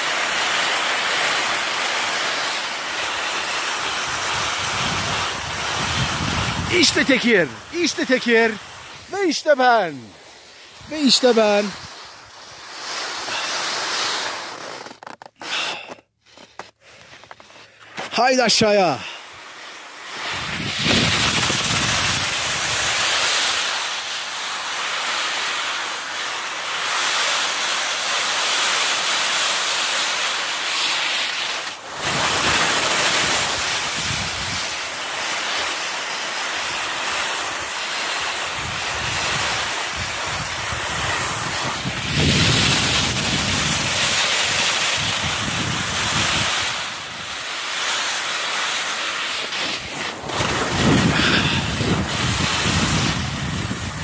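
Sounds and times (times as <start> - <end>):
skis scraping over snow: 0.0 - 54.0
wind rushing over microphone: 4.0 - 12.6, 20.2 - 23.1, 31.9 - 34.9, 38.4 - 47.5, 49.4 - 54.0.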